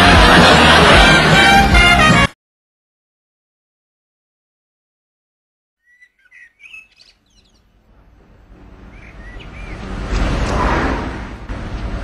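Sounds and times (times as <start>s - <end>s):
birds chirping: 5.8s - 10.5s
car approaching: 7.5s - 12.0s.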